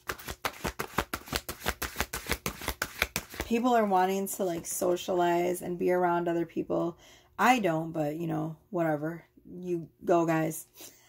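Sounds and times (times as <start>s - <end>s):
cards being shuffled: 0.0s - 3.5s.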